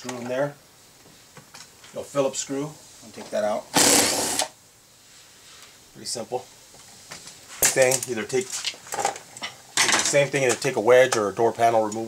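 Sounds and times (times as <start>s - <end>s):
man speaking: 1.9s - 3.7s, 6.0s - 6.5s, 7.6s - 8.5s, 10.1s - 12.0s.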